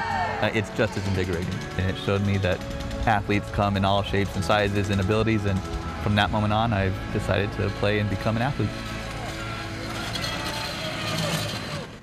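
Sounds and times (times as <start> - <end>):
electric wheelchair motor whir: 0.1 - 12.0.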